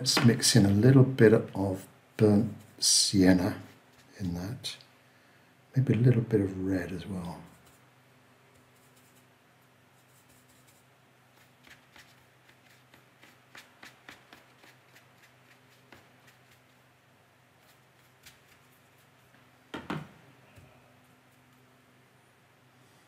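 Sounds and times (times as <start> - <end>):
brush scratching on paper: 8.7 - 9.3, 10.0 - 16.8, 17.6 - 19.3.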